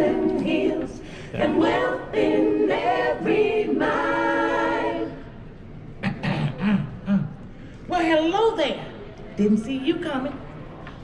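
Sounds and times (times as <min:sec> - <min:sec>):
choir singing: 0:00.0 - 0:05.5.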